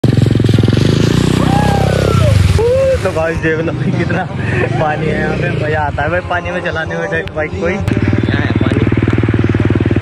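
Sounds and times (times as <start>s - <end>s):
water spraying from wheels: 0.0s - 6.1s, 8.1s - 10.0s
dirt bike engine revving: 0.0s - 10.0s.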